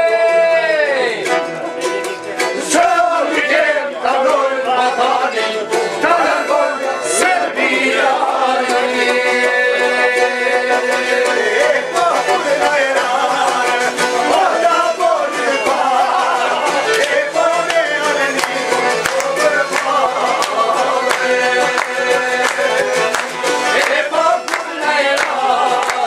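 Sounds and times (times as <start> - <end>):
accordion chords: 0.0 - 26.0
plucked lutes: 0.0 - 26.0
violin: 1.2 - 26.0.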